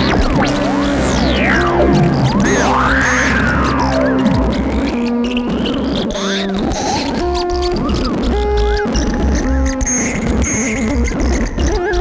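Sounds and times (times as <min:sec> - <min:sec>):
steady low synth bass: 0:00.0 - 0:05.8
synth notes with filter sweeps: 0:00.0 - 0:06.5.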